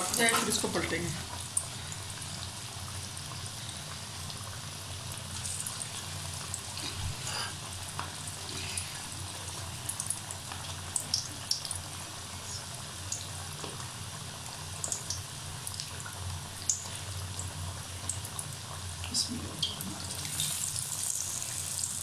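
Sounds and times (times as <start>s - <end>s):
oil popping and crackling: 0.0s - 11.9s, 14.8s - 22.0s
food sizzling in hot oil: 0.0s - 22.0s.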